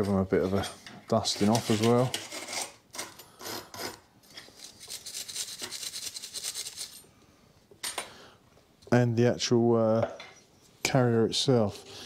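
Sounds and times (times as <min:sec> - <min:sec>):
wire brush scrubbing steel: 0:00.0 - 0:02.8.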